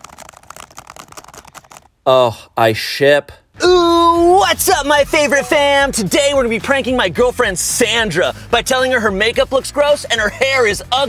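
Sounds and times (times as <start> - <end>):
fast typing on laptop keyboard: 0.0 - 1.9.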